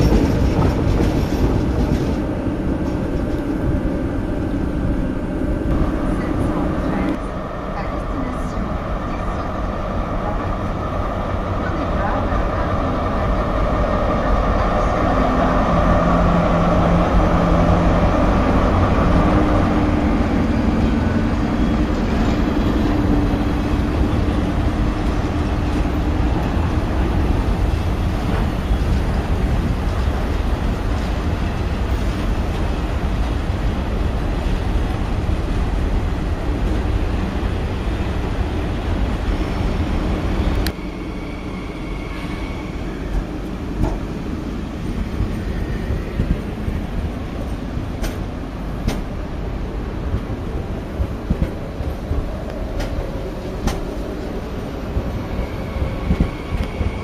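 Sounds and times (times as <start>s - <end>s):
diesel locomotive engine humming: 0.0s - 57.0s
station background: 0.0s - 57.0s
train wagons rumbling: 0.0s - 57.0s.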